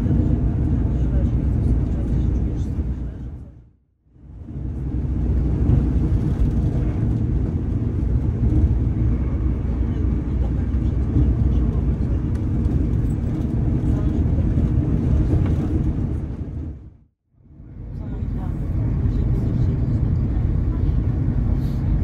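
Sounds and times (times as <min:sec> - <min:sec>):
diesel train engine rumble: 0:00.0 - 0:22.0.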